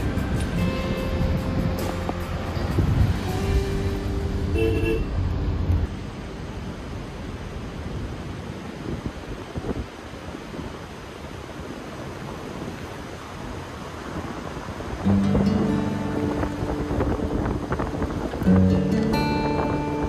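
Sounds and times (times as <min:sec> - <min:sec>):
music: 0:00.0 - 0:05.0, 0:15.1 - 0:20.0
tyres rumbling on unpaved road: 0:00.0 - 0:20.0
wind noise: 0:00.0 - 0:20.0.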